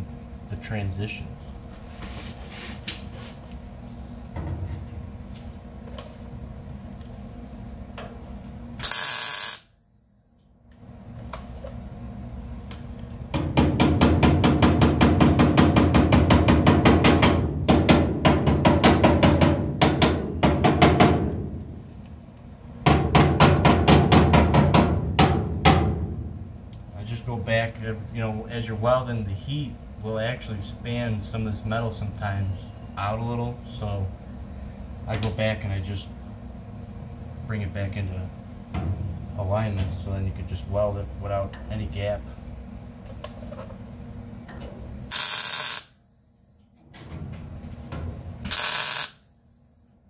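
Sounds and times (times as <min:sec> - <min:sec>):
welder crackling: 0:08.8 - 0:09.7, 0:45.1 - 0:46.0, 0:48.4 - 0:49.2.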